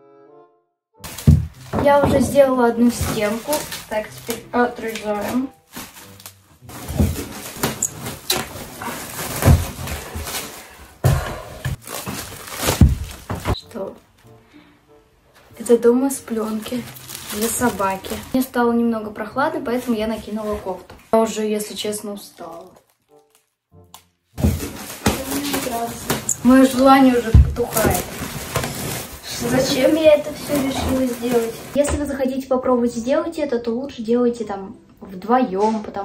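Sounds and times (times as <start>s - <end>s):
dull thumps: 1.0s - 3.7s, 24.4s - 28.8s
plastic stretch film crackling: 1.0s - 11.0s, 11.7s - 13.9s, 16.2s - 18.5s, 19.6s - 31.8s.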